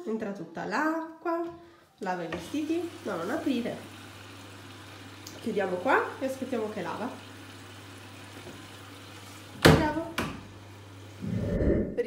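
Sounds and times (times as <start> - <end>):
washing machine humming: 2.1 - 12.0
running water hiss: 2.4 - 11.5.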